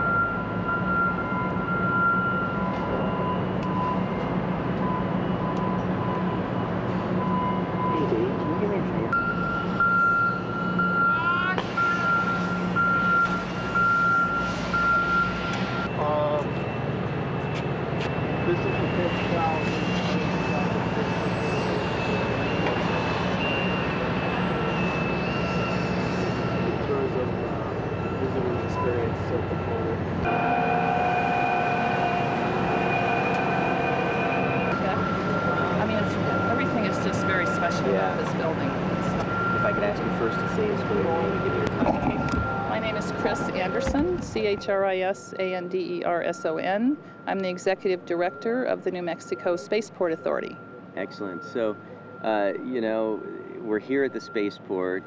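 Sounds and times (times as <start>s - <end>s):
high whine shifting pitch: 0.0s - 55.0s
heavy machinery engine running: 11.6s - 52.6s.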